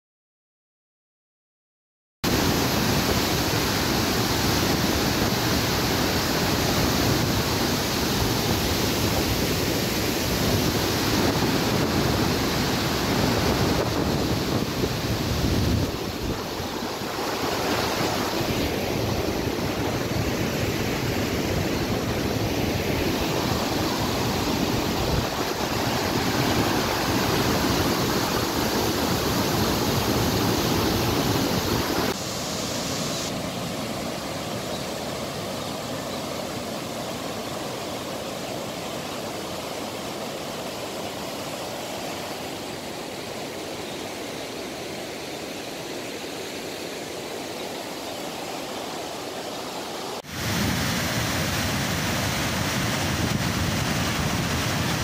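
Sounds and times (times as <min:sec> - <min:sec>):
water rushing through dam spillway: 0:02.3 - 0:55.0.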